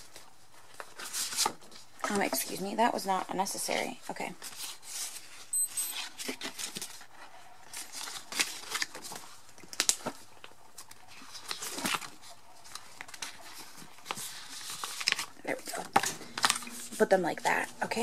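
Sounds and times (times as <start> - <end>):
plastic sleeves crinkling: 7.7 - 18.0.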